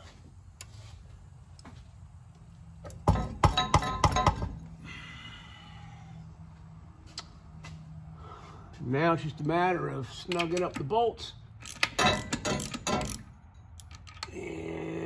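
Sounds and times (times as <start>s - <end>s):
metallic clanks and rattles: 2.8s - 4.7s, 11.6s - 14.3s
metallic ring: 3.1s - 4.6s, 11.9s - 13.7s.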